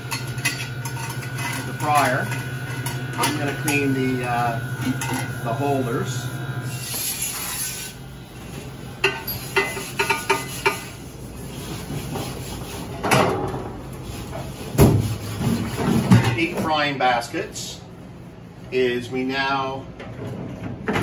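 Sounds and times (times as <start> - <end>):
sprayer hissing: 3.0 - 7.5.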